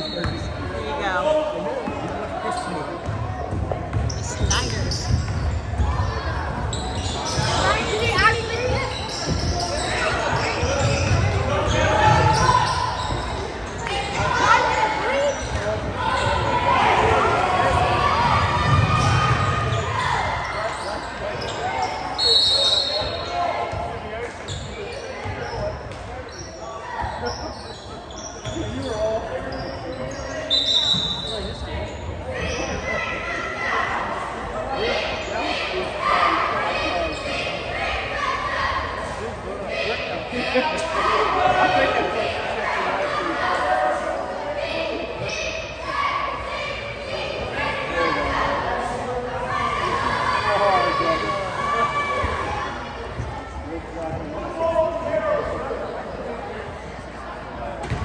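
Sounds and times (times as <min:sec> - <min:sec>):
spectators chattering: 0:00.0 - 0:58.0.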